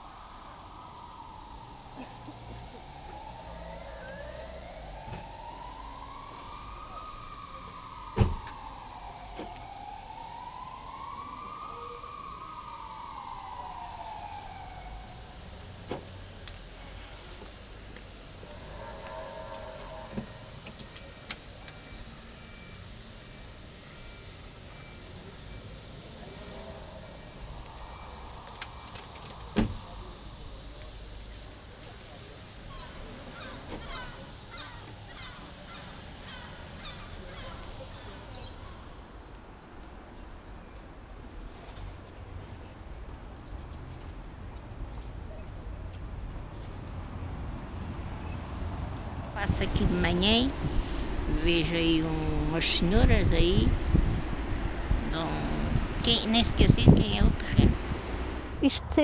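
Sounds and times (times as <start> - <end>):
emergency vehicle siren wailing: 0.0 - 39.4, 49.3 - 58.6
street background noise: 0.0 - 59.0.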